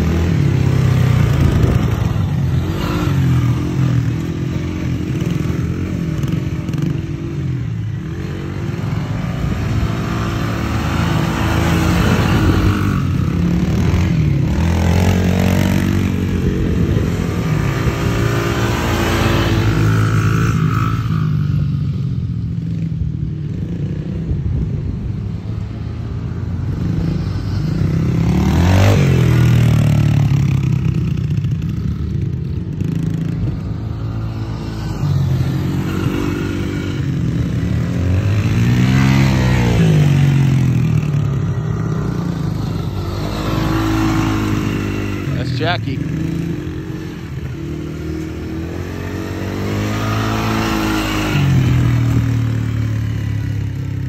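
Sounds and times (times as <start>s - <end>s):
dirt bike engine revving: 0.0s - 21.6s, 26.6s - 54.0s.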